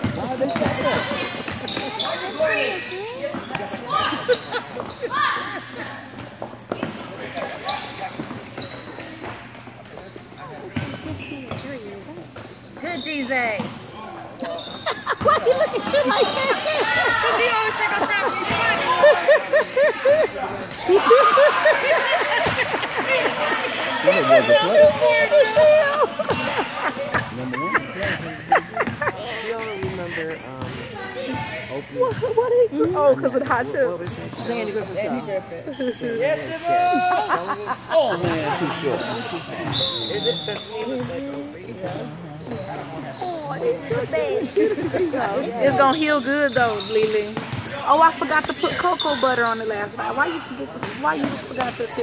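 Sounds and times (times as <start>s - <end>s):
basketball bouncing on court: 0.0s - 2.1s, 10.8s - 12.5s, 28.8s - 29.0s, 29.8s - 30.0s, 30.6s - 35.0s, 46.5s - 48.8s
shoes squeaking on court floor: 0.0s - 52.0s
voices of players and spectators: 0.0s - 52.0s.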